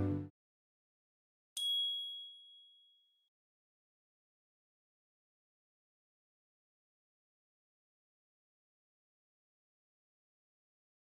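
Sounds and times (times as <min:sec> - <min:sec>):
high chime ding: 0:01.6 - 0:03.0.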